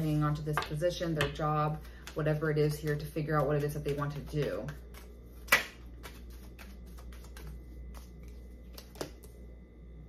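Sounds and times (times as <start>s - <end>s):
cards being shuffled: 1.8s - 9.4s.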